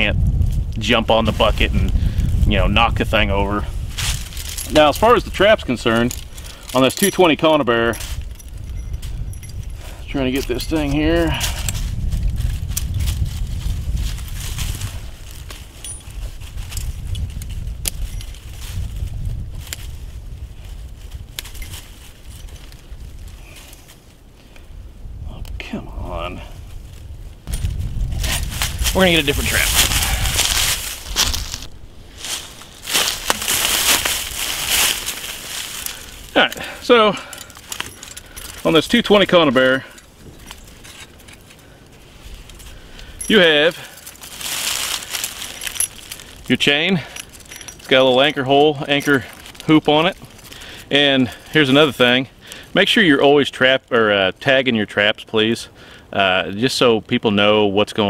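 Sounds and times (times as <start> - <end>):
metal trap and chain rattling: 4.0 - 13.2, 14.4 - 18.8, 21.4 - 22.8, 27.5 - 30.8, 32.9 - 41.6, 42.4 - 51.9
low rumble: 24.7 - 38.9.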